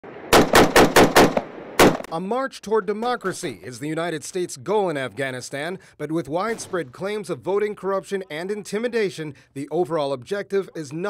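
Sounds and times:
rifle shots: 0:00.1 - 0:02.1.

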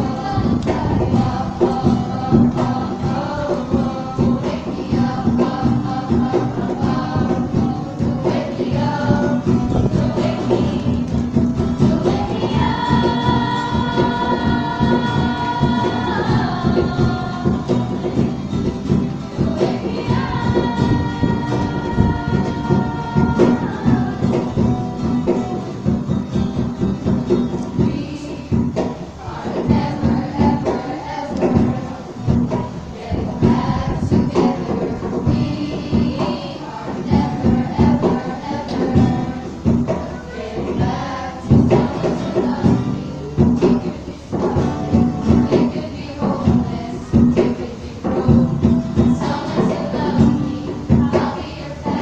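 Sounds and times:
girls singing in harmony: 0:00.0 - 0:52.0
strummed acoustic guitar: 0:00.0 - 0:52.0.

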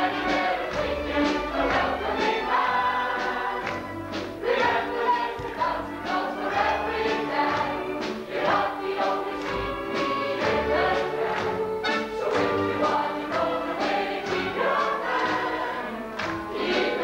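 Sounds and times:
band accompaniment: 0:00.0 - 0:17.0
chorus singing: 0:00.0 - 0:17.0.

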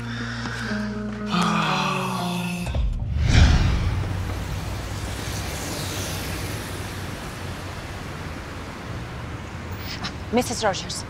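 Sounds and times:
low rumble: 0:02.6 - 0:07.2
distant traffic hiss: 0:03.7 - 0:11.0.

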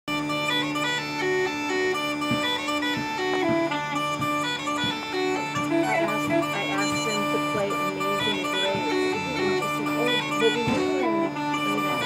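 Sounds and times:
bagpipes playing: 0:00.1 - 0:12.0.

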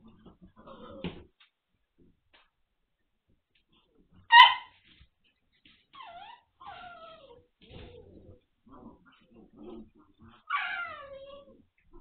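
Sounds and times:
puppies whining and yelping: 0:05.9 - 0:08.4, 0:10.3 - 0:11.7.

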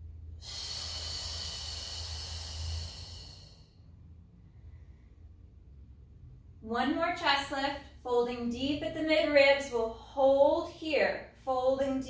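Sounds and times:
woman exhaling through mouth: 0:00.4 - 0:03.8.

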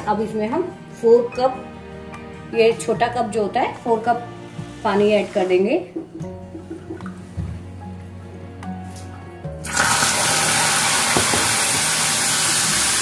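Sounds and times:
water hissing on hot caramel: 0:09.6 - 0:13.0.

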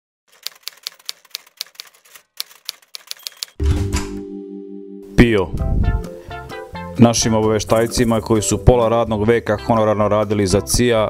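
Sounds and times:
typewriter keys striking: 0:00.3 - 0:03.6
held music chord with low hit: 0:03.6 - 0:09.2.

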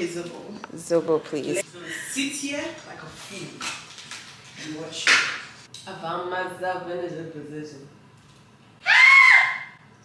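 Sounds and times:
person squealing: 0:08.8 - 0:09.8.

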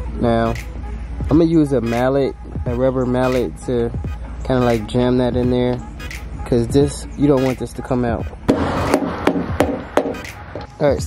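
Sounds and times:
rubber mallet knocking: 0:08.5 - 0:10.7.

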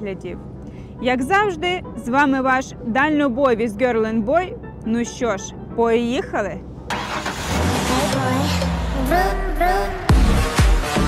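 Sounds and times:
vehicle engine running: 0:00.0 - 0:10.2.

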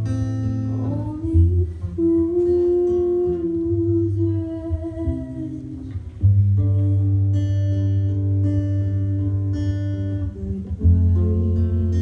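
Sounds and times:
quiet acoustic guitar: 0:00.0 - 0:12.0
woman humming a long note: 0:00.8 - 0:06.0, 0:10.0 - 0:12.0.

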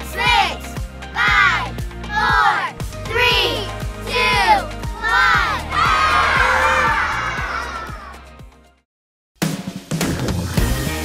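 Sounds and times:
backing music with steady beat: 0:00.0 - 0:08.7
children shouting: 0:01.2 - 0:08.2
children cheering: 0:05.1 - 0:08.3.

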